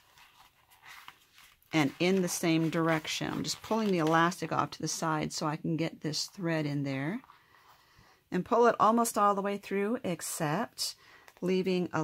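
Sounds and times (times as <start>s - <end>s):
soft handling sounds: 0.0s - 4.6s
woman speaking: 1.7s - 7.3s, 8.3s - 12.0s.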